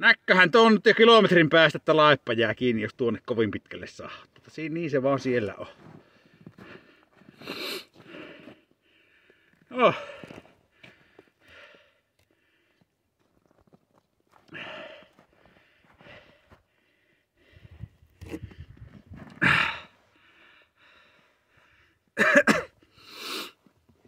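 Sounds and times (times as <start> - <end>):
person sniffing: 7.4 - 8.3, 23.0 - 23.6
person coughing: 22.2 - 22.8.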